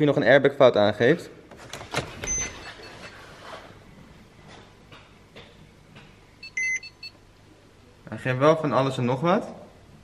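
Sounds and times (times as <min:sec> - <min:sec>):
electronic warning chime: 0:06.4 - 0:07.2.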